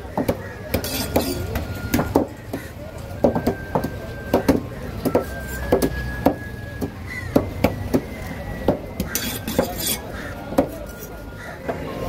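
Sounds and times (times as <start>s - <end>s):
knife chopping fish on wooden block: 0.1s - 6.5s, 8.7s - 10.0s.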